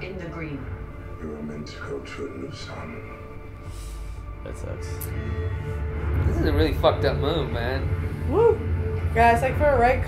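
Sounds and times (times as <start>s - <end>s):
low music score: 0.0s - 10.0s.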